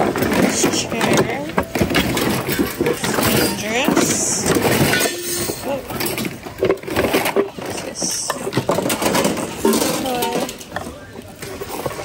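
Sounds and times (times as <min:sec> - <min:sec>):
household items clattering: 0:00.0 - 0:12.0
murmur of voices: 0:00.0 - 0:12.0.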